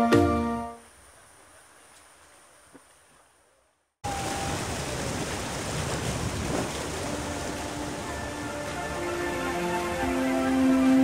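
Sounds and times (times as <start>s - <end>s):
river water rushing around raft: 4.0s - 11.0s
faint music: 7.0s - 11.0s.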